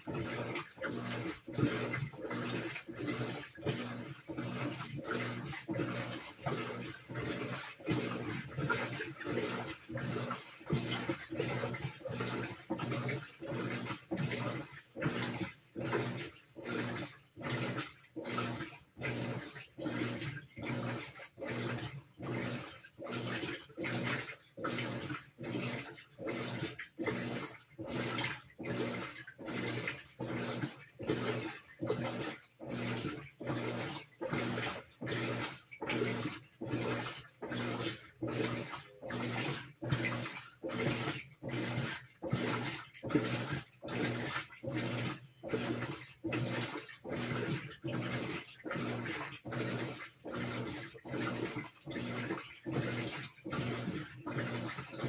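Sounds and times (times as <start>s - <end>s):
washing machine sloshing water: 0.0s - 55.0s.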